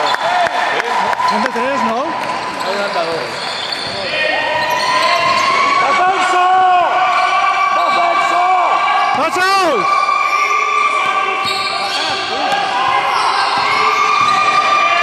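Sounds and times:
people shouting: 4.1 - 15.0
basketball dribbling in gym: 11.0 - 15.0.

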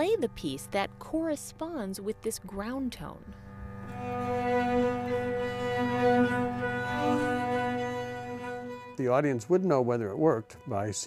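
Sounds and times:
flute violin and cello playing: 3.9 - 11.0.

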